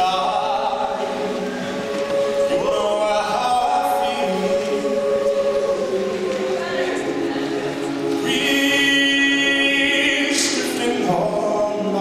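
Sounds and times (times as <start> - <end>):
a cappella group singing: 1.9 - 12.0.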